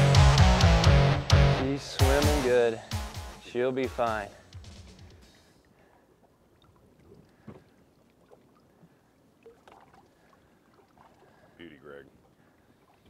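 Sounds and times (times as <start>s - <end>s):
water lapping against boat hull: 5.4s - 13.0s
small splashes and knocks: 5.8s - 13.0s.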